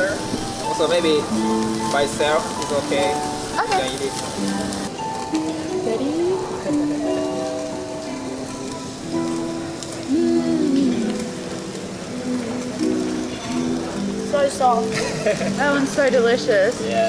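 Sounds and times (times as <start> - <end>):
faint steady hiss: 0.0 - 17.0
slow melody with sliding notes: 0.0 - 17.0.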